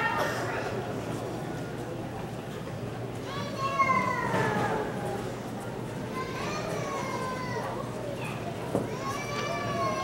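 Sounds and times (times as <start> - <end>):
low crowd murmur: 0.0 - 10.0.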